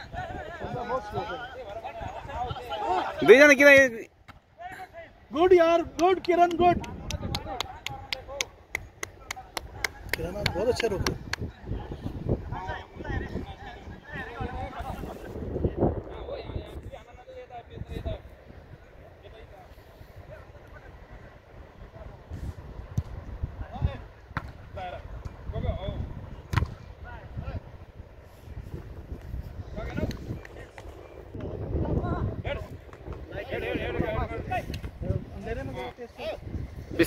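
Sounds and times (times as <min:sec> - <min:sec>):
wind rumble on microphone: 0:00.0 - 0:03.3, 0:05.4 - 0:37.0.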